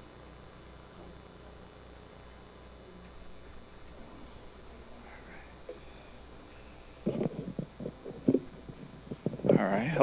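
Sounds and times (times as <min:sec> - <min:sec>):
microphone handling thumps: 0:05.6 - 0:09.6.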